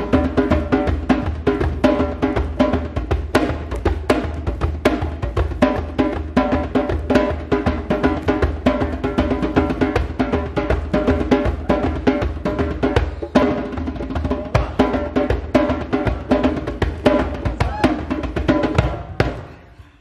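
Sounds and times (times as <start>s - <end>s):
hand drum slaps and open strokes: 2.6s - 6.2s, 7.1s - 11.4s.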